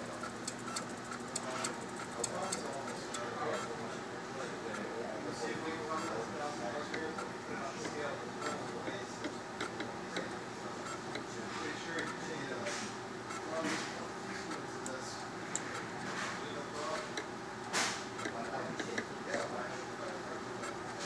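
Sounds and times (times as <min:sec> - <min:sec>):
microtome mechanical hum: 0:00.0 - 0:21.0.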